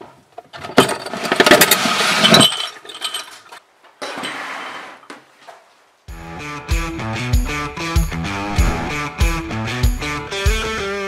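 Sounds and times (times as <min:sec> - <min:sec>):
short scraping slide: 0:08.3 - 0:09.1.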